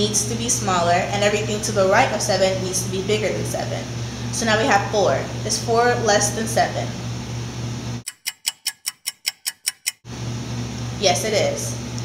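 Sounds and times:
room hum: 0.0 - 8.1, 10.0 - 12.0
rapid even ticking: 8.0 - 10.0.

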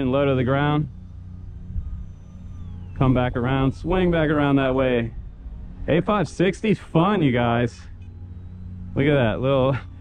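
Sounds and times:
wind rumble on microphone: 0.0 - 7.6
small electric motor whine: 0.0 - 10.0.

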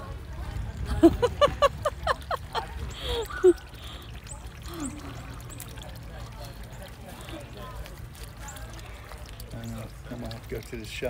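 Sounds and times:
faint voices: 0.0 - 11.0
water pouring into pond: 0.0 - 11.0.

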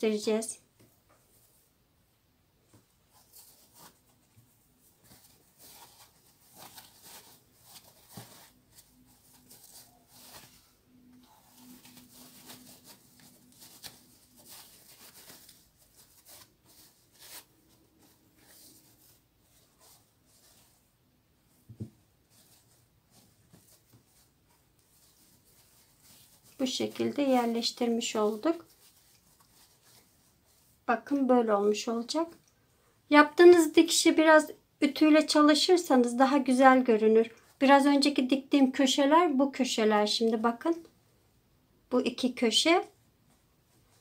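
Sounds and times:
cloth rustling and crinkling: 2.6 - 32.4, 42.8 - 44.0.

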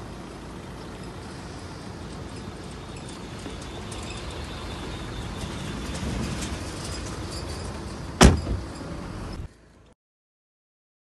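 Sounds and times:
car engine idling: 0.0 - 9.9
car door slamming: 8.2 - 8.8.

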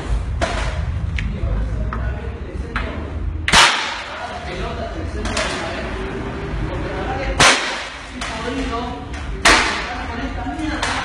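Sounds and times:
hard object slammed on tiled floor: 3.5 - 4.2, 7.4 - 8.0.

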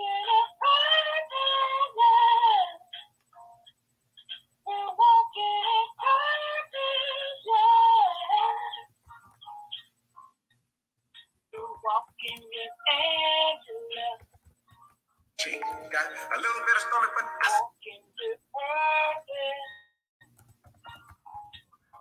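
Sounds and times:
woman singing: 4.7 - 8.9, 11.6 - 14.2, 17.7 - 19.8.

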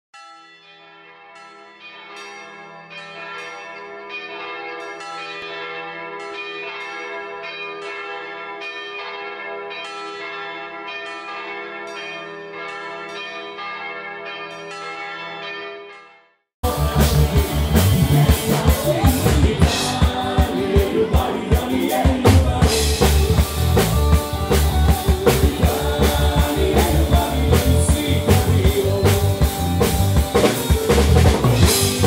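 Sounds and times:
church bells pealing: 0.2 - 32.0.

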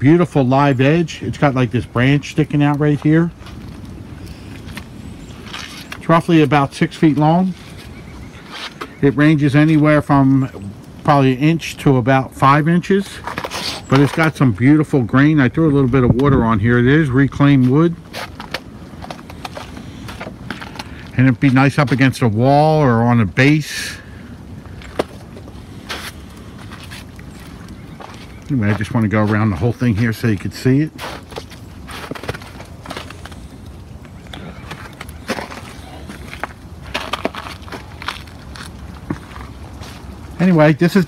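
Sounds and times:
outdoor background noise: 0.0 - 41.0
footsteps crunching on snow: 2.4 - 9.1, 17.3 - 22.2, 24.6 - 40.7
light clicks and scrapes: 13.0 - 14.4.

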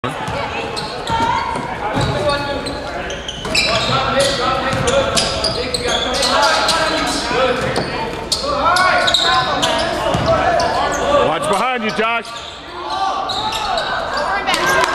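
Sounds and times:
basketball bouncing on gym floor: 4.7 - 5.0, 10.1 - 10.3.

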